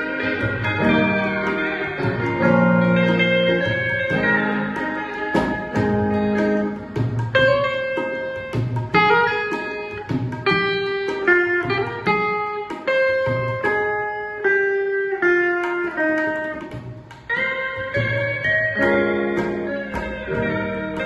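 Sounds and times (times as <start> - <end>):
electric guitar accompaniment: 0.0 - 21.0
steel guitar sliding melody: 0.0 - 21.0
tabla: 0.0 - 21.0.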